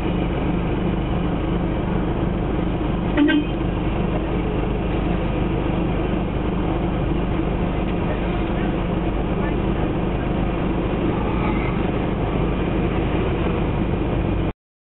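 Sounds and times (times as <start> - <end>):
low car engine hum: 0.0 - 14.5
indistinct voices: 7.3 - 12.4.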